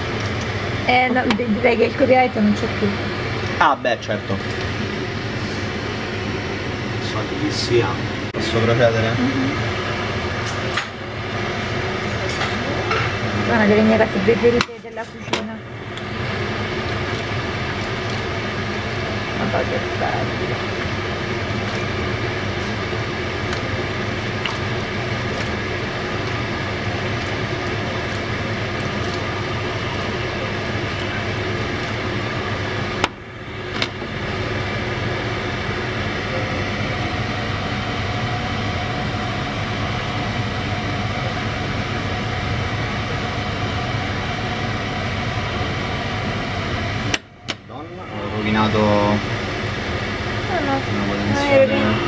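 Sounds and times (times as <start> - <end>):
mechanical hum: 0.0 - 52.0.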